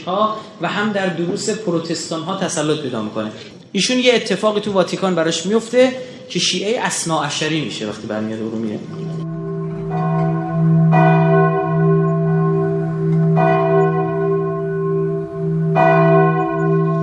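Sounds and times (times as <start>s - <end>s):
church bell tolling: 8.5s - 17.0s.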